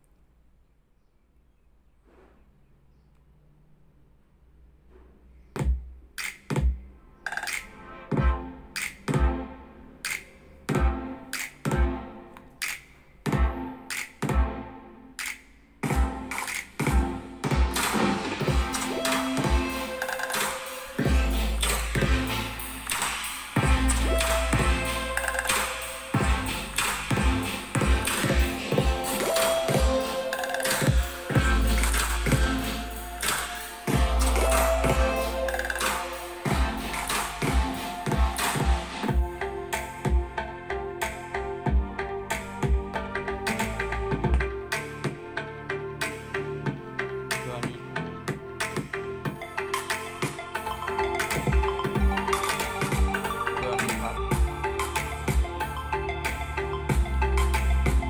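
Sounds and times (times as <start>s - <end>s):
music over speakers: 5.6s - 58.0s
deep bass: 21.0s - 23.0s, 23.6s - 25.5s, 26.2s - 30.0s, 30.9s - 33.3s, 33.9s - 44.7s, 51.4s - 58.0s.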